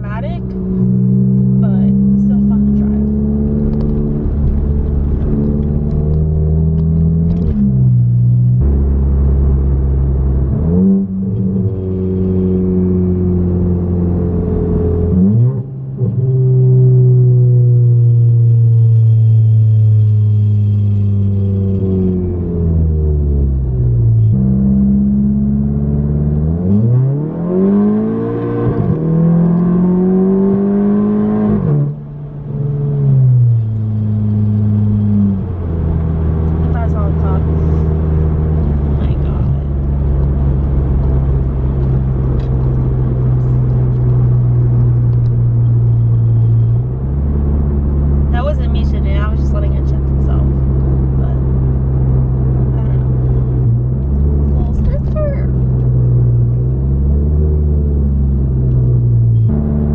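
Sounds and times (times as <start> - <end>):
car engine accelerating through gears: 0.0 - 59.9.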